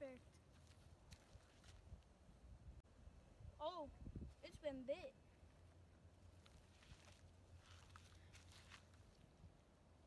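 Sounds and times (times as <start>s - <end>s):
faint ticks and rustles: 5.4s - 9.4s.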